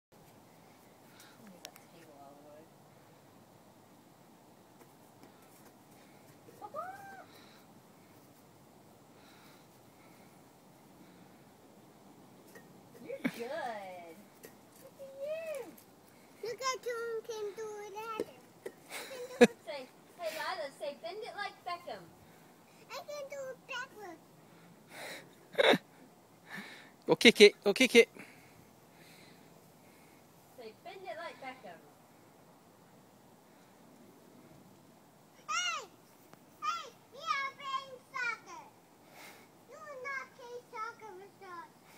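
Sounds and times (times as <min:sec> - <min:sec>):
toddler's high-pitched call: 0:06.6 - 0:07.4, 0:35.4 - 0:36.0.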